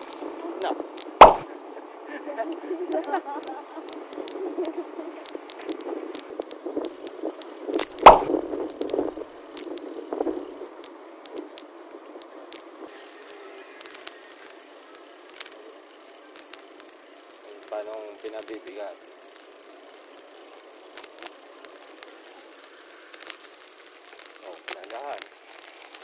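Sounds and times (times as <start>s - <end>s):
bicycle rattling on road: 0.0s - 26.0s.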